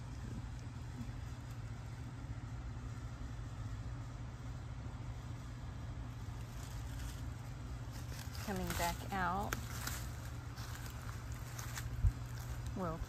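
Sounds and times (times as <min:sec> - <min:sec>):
low outdoor rumble: 0:00.0 - 0:13.0.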